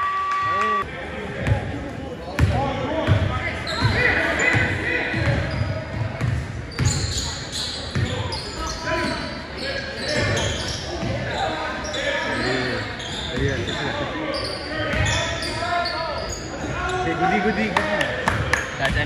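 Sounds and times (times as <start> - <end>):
sneaker squeaks: 3.6 - 17.7.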